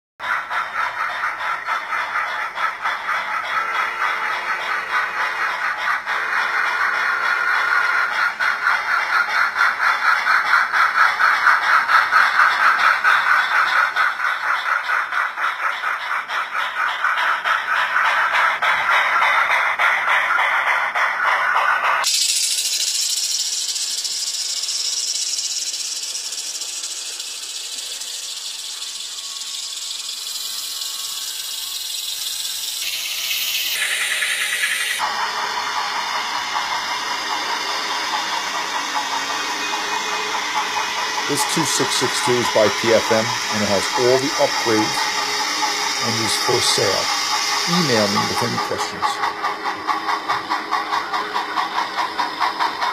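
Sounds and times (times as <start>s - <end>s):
model steam locomotive chuffs: 0.2s - 52.9s
steady steam hiss: 3.6s - 52.9s.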